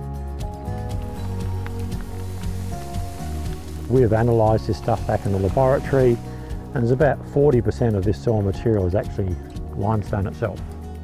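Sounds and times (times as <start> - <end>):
music with sustained chords: 0.0 - 11.0
acid fizzing on soil: 0.6 - 8.8.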